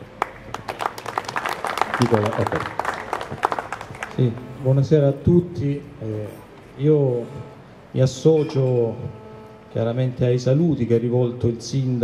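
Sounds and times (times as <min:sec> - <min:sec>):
audience applauding: 0:00.2 - 0:04.6.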